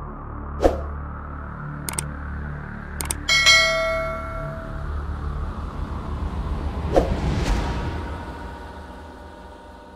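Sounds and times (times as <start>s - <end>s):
short clicks: 1.9s - 2.1s, 3.0s - 3.3s
bell ding: 3.2s - 5.1s.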